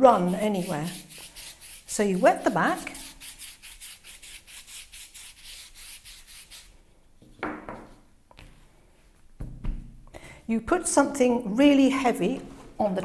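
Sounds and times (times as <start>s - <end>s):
brush sweeping water on paper: 0.0s - 6.7s.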